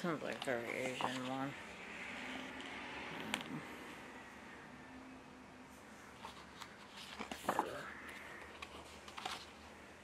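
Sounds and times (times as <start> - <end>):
book pages turning: 0.2 - 1.5, 6.1 - 9.8.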